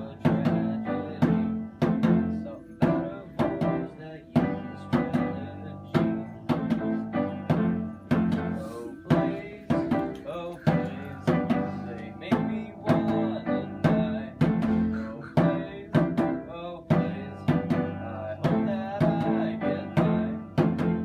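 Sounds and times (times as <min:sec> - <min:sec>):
djembe hand drum beat: 0:00.0 - 0:21.0
piano chords: 0:00.0 - 0:21.0.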